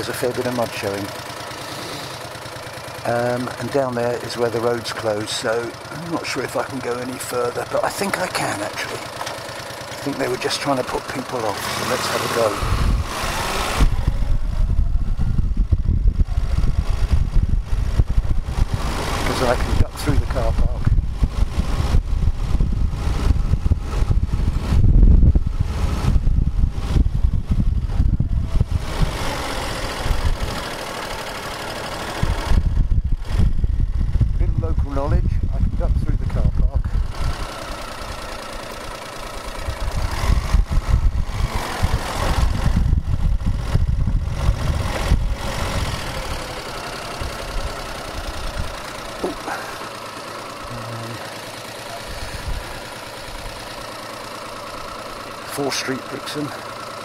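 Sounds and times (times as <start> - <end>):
motorcycle engine running: 0.0 - 57.0
wind rumbling on microphone: 12.6 - 30.6, 32.2 - 37.4, 39.6 - 46.4.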